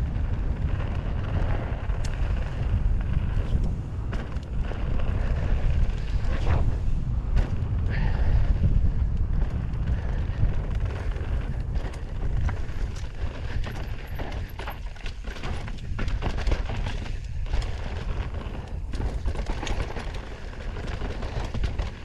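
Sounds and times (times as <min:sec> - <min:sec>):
bike clicks and rattles: 0:00.0 - 0:22.0
wind buffeting microphone: 0:00.0 - 0:22.0
tyres rolling on dirt: 0:09.1 - 0:22.0.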